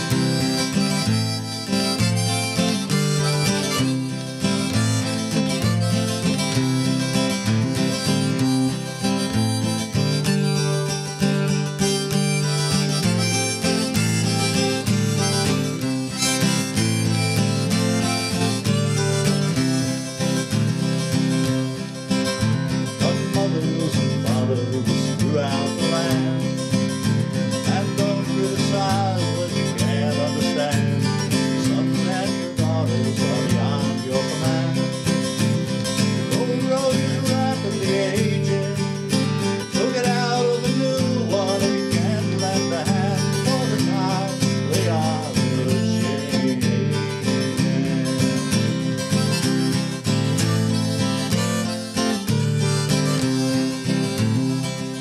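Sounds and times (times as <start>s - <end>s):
acoustic guitar strumming: 0.0s - 55.0s
harmonica melody: 0.0s - 55.0s.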